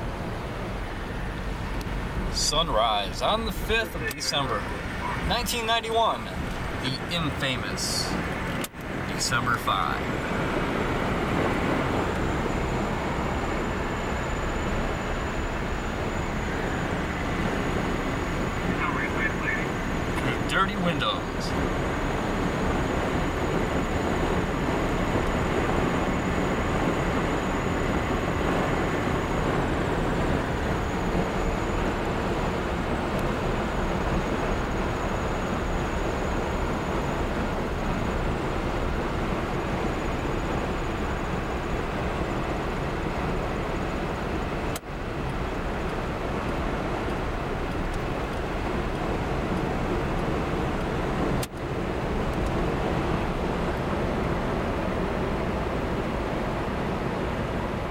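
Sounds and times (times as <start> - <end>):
faint high whine: 0.0 - 56.8
car engine and road noise: 0.0 - 57.9.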